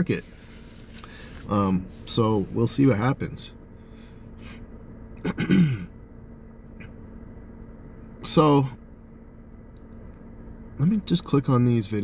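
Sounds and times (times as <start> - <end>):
man breathing in: 1.0 - 1.4
man clearing his throat: 5.2 - 5.9.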